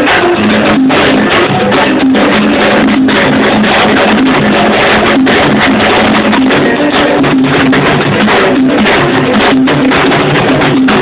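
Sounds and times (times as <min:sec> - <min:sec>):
live salsa band playing: 0:00.0 - 0:11.0.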